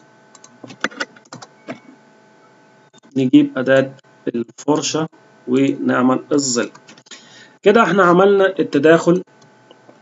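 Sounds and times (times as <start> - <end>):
faint electrical whine: 0.0 - 10.0
computer mouse clicks: 0.3 - 1.8.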